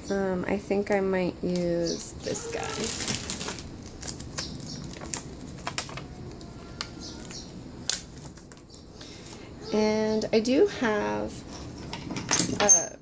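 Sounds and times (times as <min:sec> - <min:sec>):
plastic clicks and crinkles: 0:02.5 - 0:08.8.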